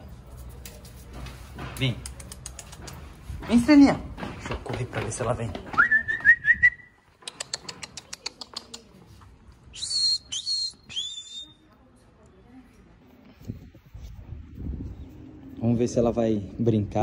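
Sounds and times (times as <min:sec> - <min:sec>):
short sharp whistles: 0:05.8 - 0:07.0, 0:09.7 - 0:11.6.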